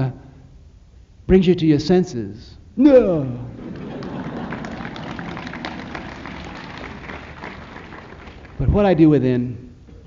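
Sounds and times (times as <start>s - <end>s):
audience applauding: 3.6s - 8.9s.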